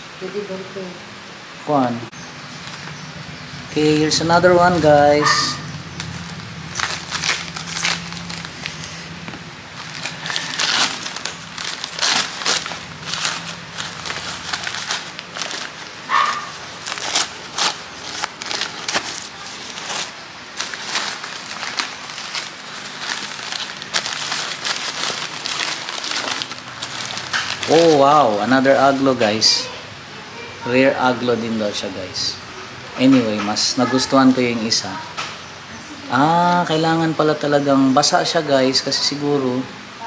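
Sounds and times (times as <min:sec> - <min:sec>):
newspaper crumpling and crinkling: 0:02.4 - 0:03.0, 0:03.7 - 0:29.7.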